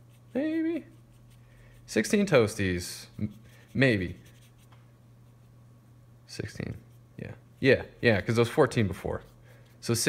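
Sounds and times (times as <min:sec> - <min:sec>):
paintbrush strokes on paper: 0:00.0 - 0:06.0
low steady hum: 0:00.0 - 0:10.0.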